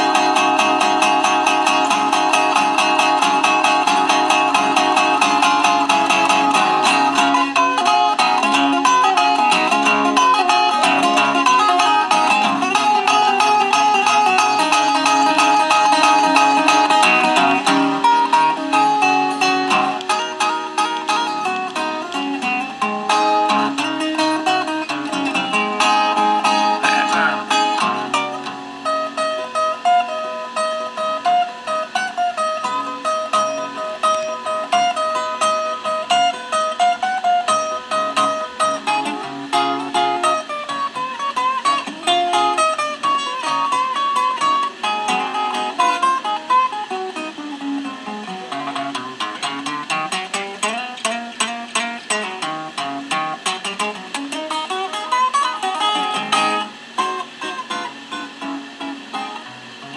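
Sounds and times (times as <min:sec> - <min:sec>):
resonator guitar blues: 0:00.0 - 0:59.9.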